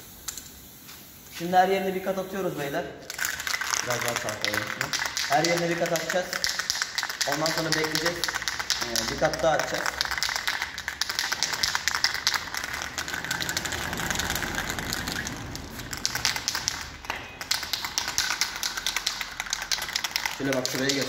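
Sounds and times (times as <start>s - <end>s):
spray can ball rattling: 0.0s - 21.0s.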